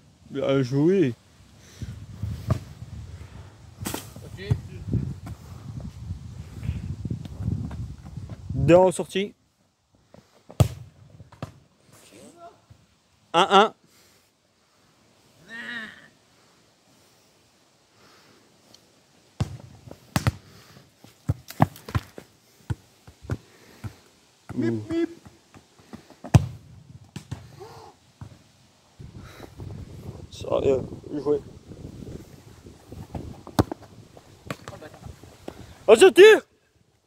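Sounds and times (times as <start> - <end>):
football kick thump: 10.5 - 11.6, 19.4 - 20.4, 26.2 - 27.5, 33.1 - 34.8.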